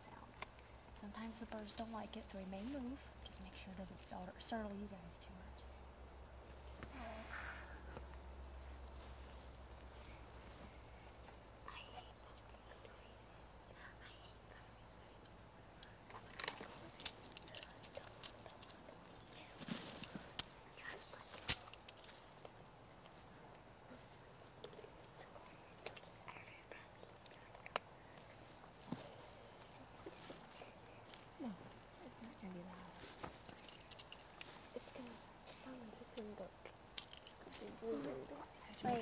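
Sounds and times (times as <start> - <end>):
banding tool clicking on metal: 21.4 - 22.2, 37.0 - 37.4.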